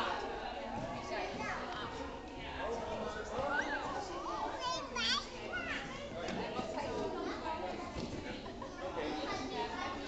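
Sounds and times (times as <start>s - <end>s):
children's voices playing: 3.4s - 6.1s.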